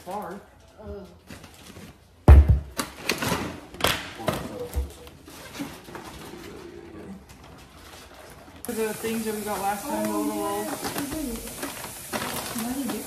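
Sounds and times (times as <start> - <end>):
groceries clattering and knocking: 0.0 - 8.6, 9.6 - 13.0.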